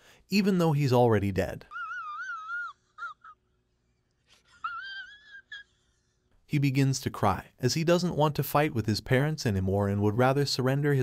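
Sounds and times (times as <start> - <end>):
man crying and sobbing: 1.6 - 6.5.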